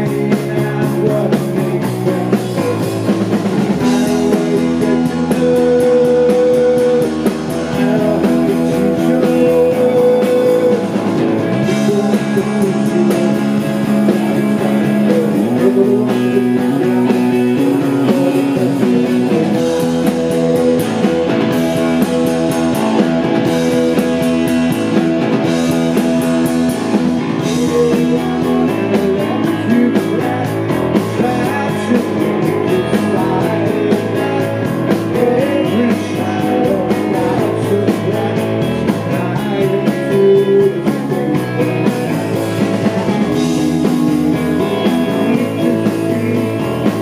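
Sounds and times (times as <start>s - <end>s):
live rock band playing: 0.0s - 47.0s.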